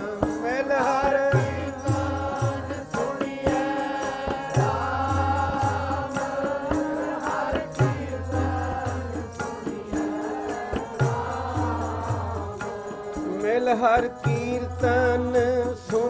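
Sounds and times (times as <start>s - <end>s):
harmonium: 0.0s - 16.0s
tabla drumming: 0.0s - 16.0s
voices singing a chanted melody: 0.0s - 16.0s.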